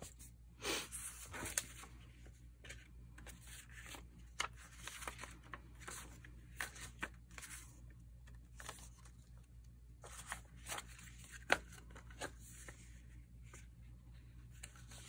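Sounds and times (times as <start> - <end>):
paper pages rustling: 0.9 - 13.7, 14.4 - 15.0.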